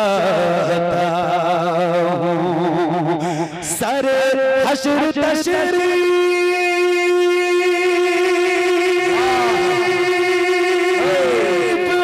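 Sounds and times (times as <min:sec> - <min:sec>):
man singing long note: 0:04.8 - 0:12.0
faint wavering voices: 0:09.0 - 0:12.0.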